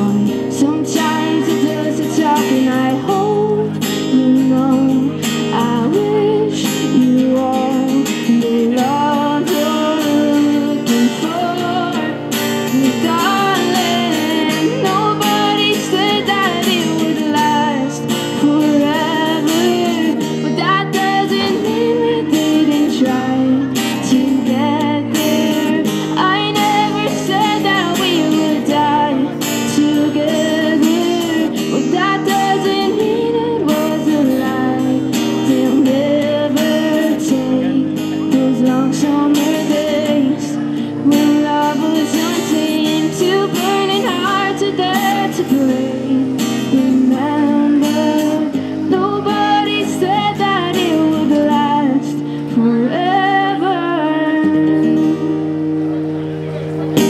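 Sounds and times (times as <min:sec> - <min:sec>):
woman singing a slow melody: 0:00.0 - 0:55.7
acoustic guitar strumming: 0:00.0 - 0:57.0.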